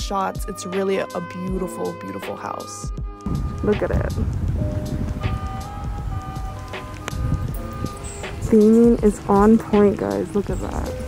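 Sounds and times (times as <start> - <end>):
background music sustained notes: 0.0 - 11.0
steady low rumble: 3.3 - 11.0.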